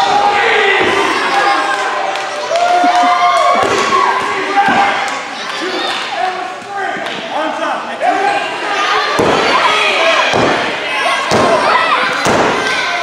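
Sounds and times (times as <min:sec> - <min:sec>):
crowd shouting: 0:00.0 - 0:06.5.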